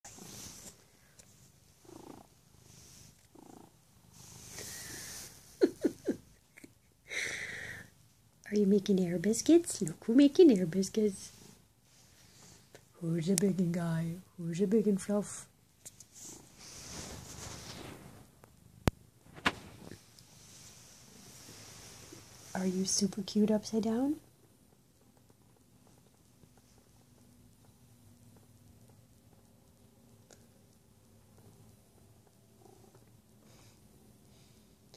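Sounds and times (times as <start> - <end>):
cat purring: 0.0 - 6.8, 7.6 - 34.9.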